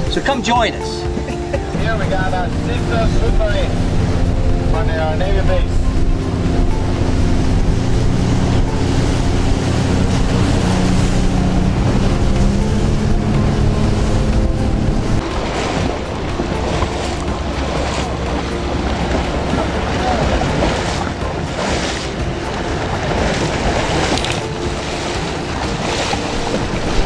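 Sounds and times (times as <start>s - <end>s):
speedboat engine running: 0.0s - 27.0s
water rushing past hull: 0.0s - 27.0s
wind buffeting microphone: 1.0s - 27.0s.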